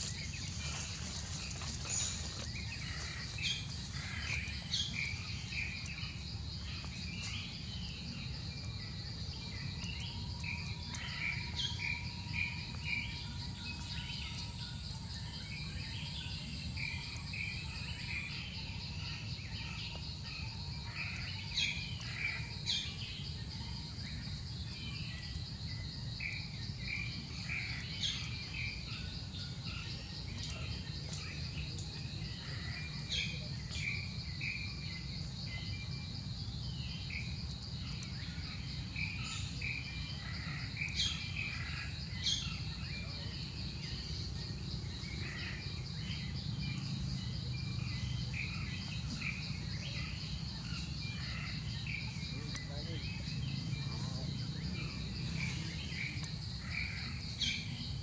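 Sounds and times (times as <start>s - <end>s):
high insect trill: 0.0s - 58.0s.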